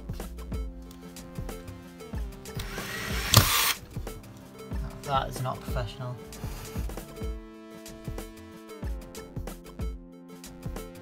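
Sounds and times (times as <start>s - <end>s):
background music with steady beat: 0.0s - 11.0s
cordless drill driving a screw: 2.6s - 3.8s.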